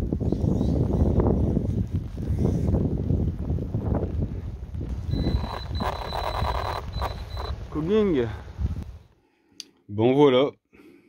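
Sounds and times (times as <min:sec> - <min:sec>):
wind buffeting microphone: 0:00.0 - 0:09.1
high-pitched beep: 0:05.1 - 0:07.5.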